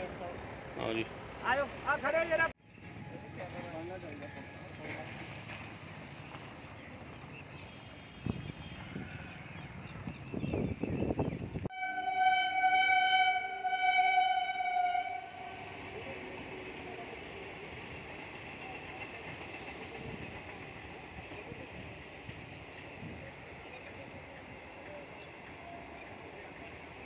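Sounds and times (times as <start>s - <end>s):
passenger train passing: 0.0s - 27.0s
train horn blast: 11.7s - 15.9s.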